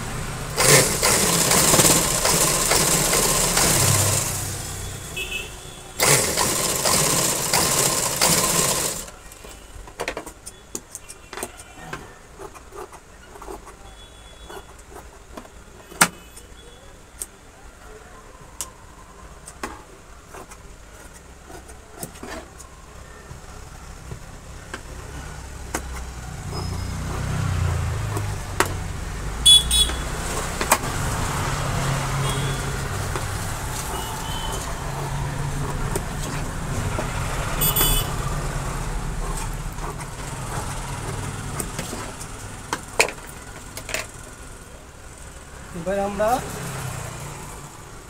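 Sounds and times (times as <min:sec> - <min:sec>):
vehicle engine rumble: 0:22.6 - 0:45.8.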